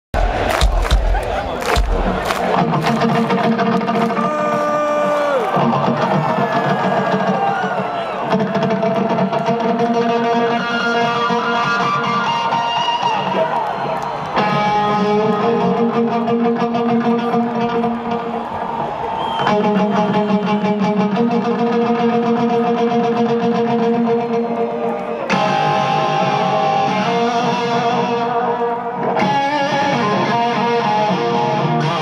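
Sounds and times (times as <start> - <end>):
crowd cheering: 0.1 - 31.9
heavy thumps: 0.2 - 2.6
electric guitar through pa: 0.2 - 13.4, 14.3 - 32.0.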